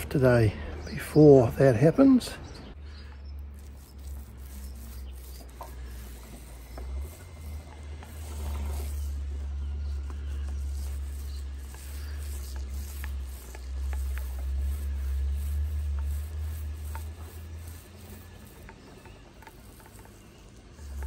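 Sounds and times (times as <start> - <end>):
paint roller rolling: 2.7 - 21.0.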